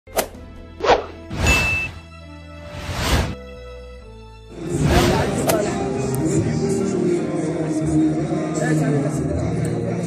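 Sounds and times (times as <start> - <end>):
swelling swoosh: 2.6 - 3.4, 4.5 - 5.9
low musical drone: 3.7 - 10.0.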